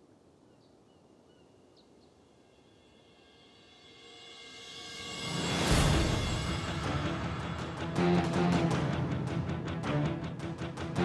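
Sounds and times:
faint outdoor ambience: 0.0 - 11.0
dramatic soundtrack music: 4.3 - 11.0.

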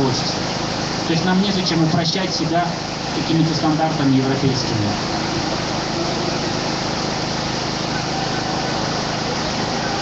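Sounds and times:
mechanical drone with hiss: 0.0 - 10.0.

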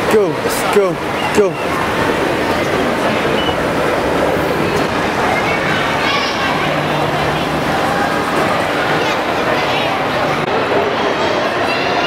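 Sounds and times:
escalator mechanical rumble: 0.8 - 10.5.

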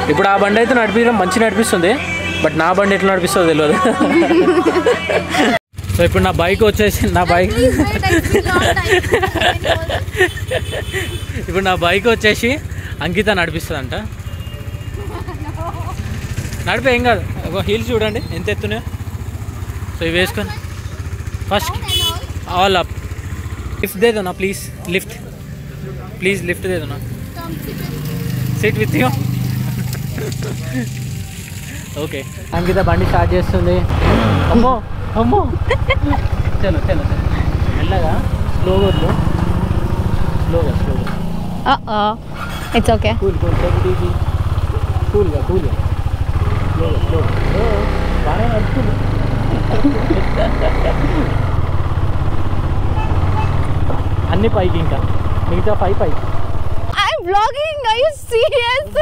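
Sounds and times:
voices: 0.0 - 51.5, 56.9 - 59.0
motorcycle engine idling: 5.3 - 57.1.

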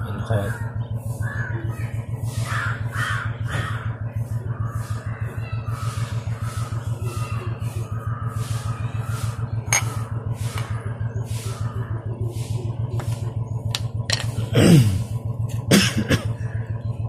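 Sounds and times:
bird calling: 0.0 - 14.5
low throbbing hum: 0.0 - 17.0.

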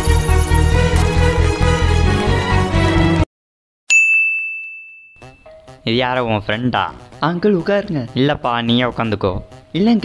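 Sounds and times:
intro theme music: 0.0 - 3.2
bright ding: 3.9 - 5.8.

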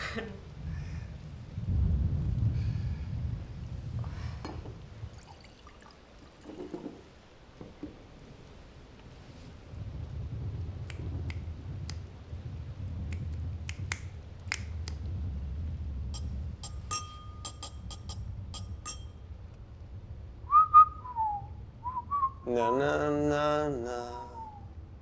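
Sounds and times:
man snapping fingers: 13.1 - 15.0
whistled phrase: 20.5 - 22.5, 24.2 - 24.8.

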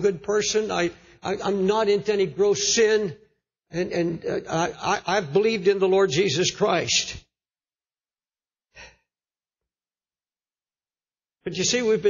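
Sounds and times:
person breathing near microphone: 8.7 - 9.1.

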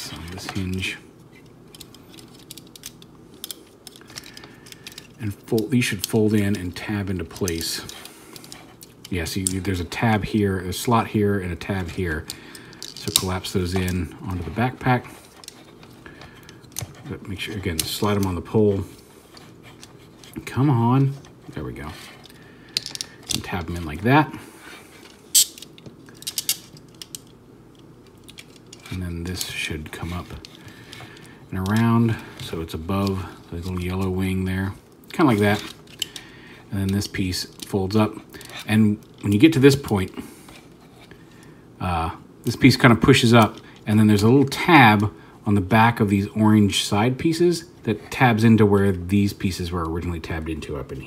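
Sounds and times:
plastic toy parts clicking: 1.7 - 5.2, 22.2 - 23.4, 25.3 - 28.9.

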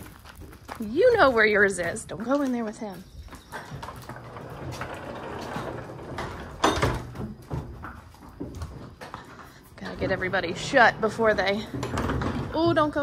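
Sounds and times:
horses scuffing in wooden stalls: 0.0 - 13.0.

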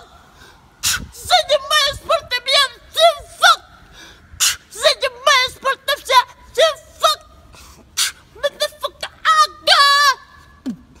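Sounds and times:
sharp breathy hiss: 0.2 - 1.2, 3.8 - 4.7, 7.5 - 8.4.

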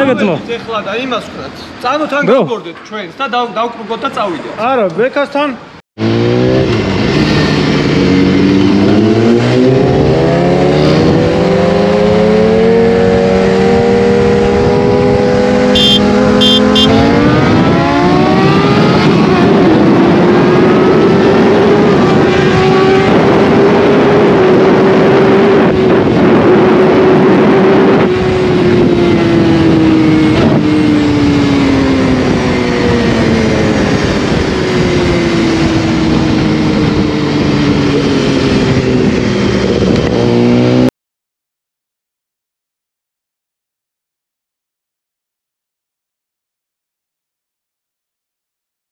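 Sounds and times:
motorcycle engine accelerating: 6.0 - 40.9
wind rushing: 6.0 - 40.9.

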